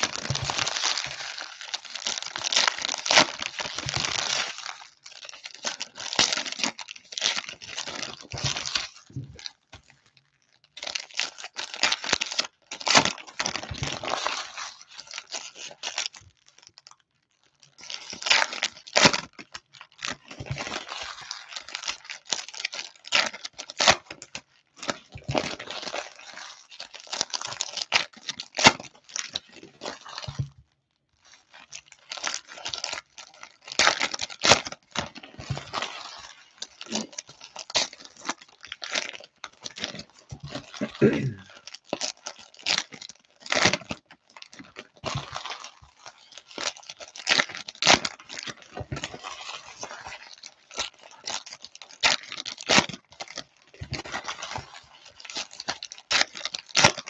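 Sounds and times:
wrappers torn and crinkled: 0.0 - 57.0.

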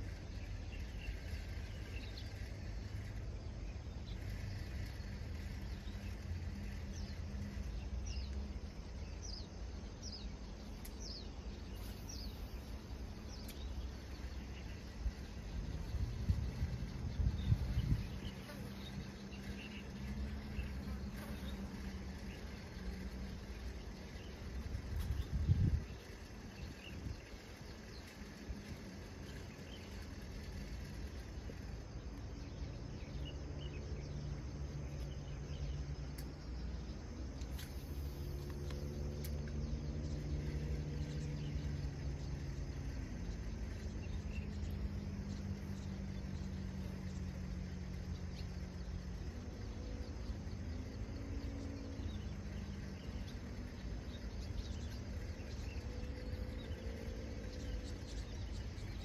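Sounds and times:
distant engine droning: 0.0 - 59.0
insects chirping: 0.0 - 59.0
low outdoor rumble: 0.0 - 59.0.

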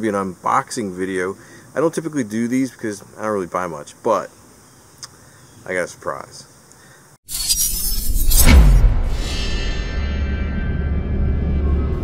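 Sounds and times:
logo intro music sting: 7.4 - 12.0
falling low tone: 8.4 - 12.0.

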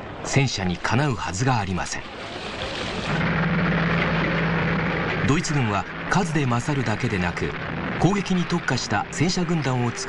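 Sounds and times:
tank engine droning: 1.8 - 10.0.

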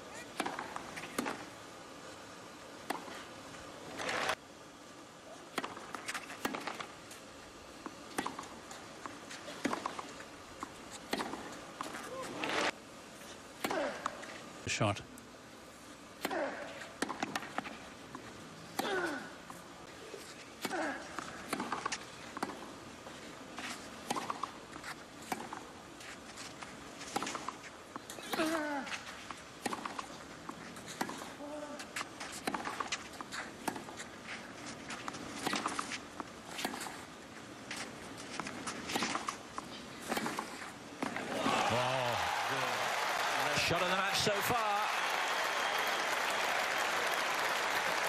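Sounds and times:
racket striking tennis ball: 11.1 - 12.7, 20.6 - 22.6, 24.0 - 24.6, 29.6 - 30.1, 30.9 - 31.3, 31.9 - 34.0, 37.8 - 39.4, 40.0 - 41.4
crowd applause: 41.3 - 48.0.

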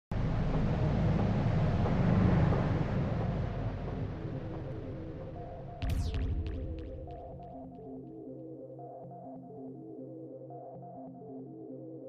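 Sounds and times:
deep rumbling whoosh: 0.1 - 7.7.

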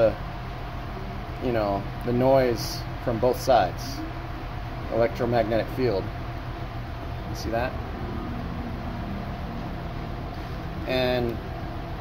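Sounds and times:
misfiring car engine rumbling: 4.1 - 12.0.

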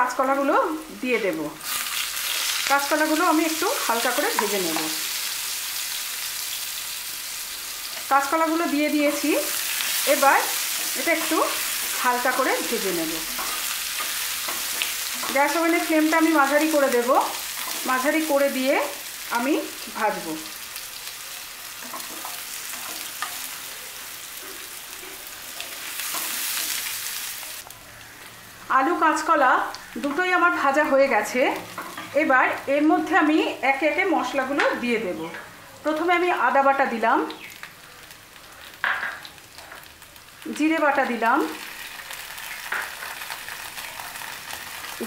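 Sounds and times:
food sizzling in hot oil: 0.0 - 45.0.

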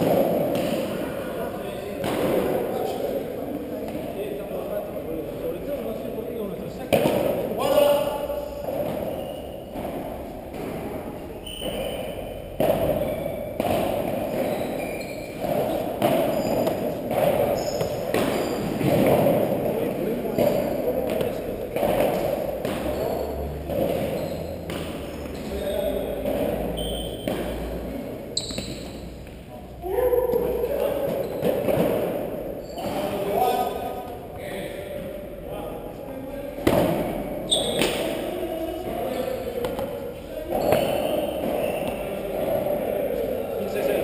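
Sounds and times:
rackets striking ball: 0.0 - 4.2, 6.7 - 29.5, 30.3 - 34.2, 36.6 - 42.8
ball bouncing off floor and walls: 8.7 - 29.4
voices murmuring and calling out: 14.1 - 44.0.

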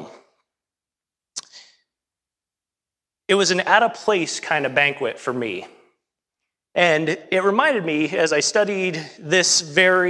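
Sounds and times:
man speaking: 0.0 - 0.3, 3.3 - 6.0, 6.7 - 10.0.

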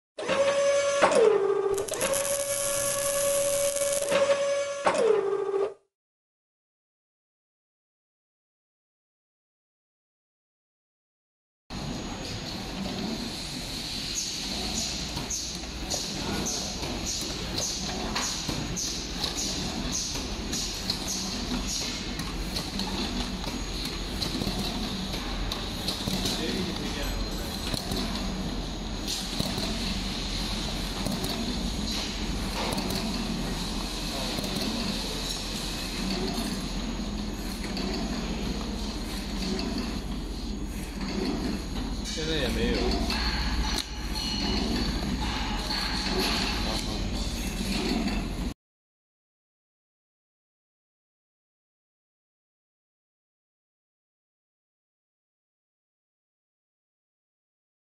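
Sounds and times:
machine clatter and hum: 11.7 - 48.6.

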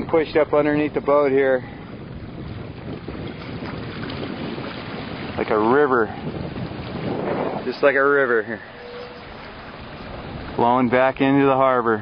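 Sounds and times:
water rushing past boat hull: 0.0 - 12.0
wind noise on microphone: 0.0 - 12.0.

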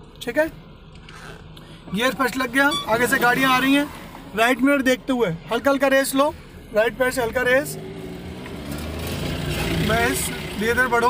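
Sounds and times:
car engine pulling away: 6.8 - 11.0.

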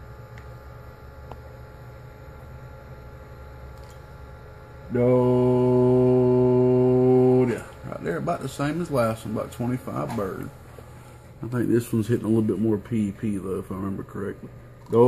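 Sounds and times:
faint background hum: 0.0 - 15.0
loud buzzy low hum: 0.0 - 15.0.

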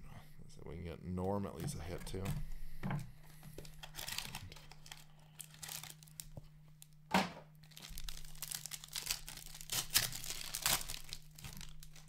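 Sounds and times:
plastic wrapper crinkling and tearing: 3.6 - 7.0, 7.6 - 12.0.

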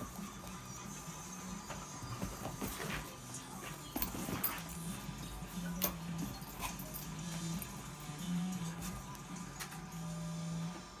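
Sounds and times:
dogs play-wrestling: 0.0 - 10.0
low background music: 0.0 - 11.0.

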